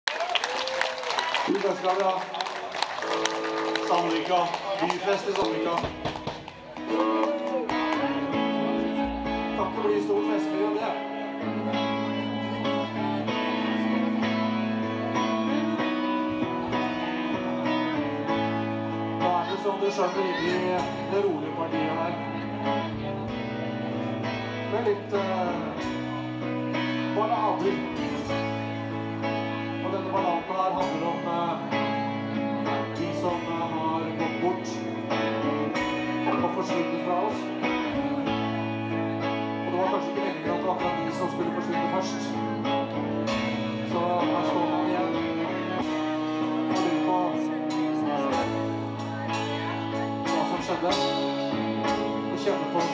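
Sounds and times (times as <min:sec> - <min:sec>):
live band playing: 0:00.1 - 0:52.9
electric guitar chords: 0:01.1 - 0:52.9.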